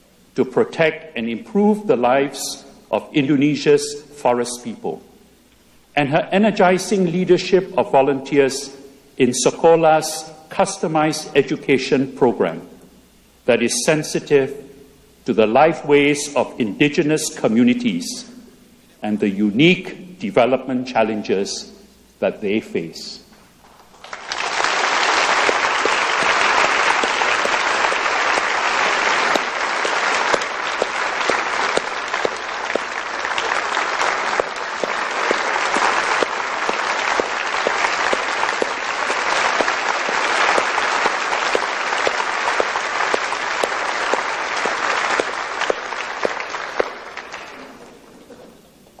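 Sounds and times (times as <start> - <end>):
audience applauding: 23.8 - 48.0.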